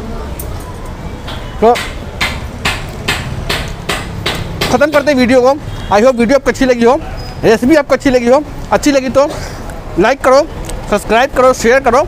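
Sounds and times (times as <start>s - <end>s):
sharp knocking blows: 1.3s - 5.3s.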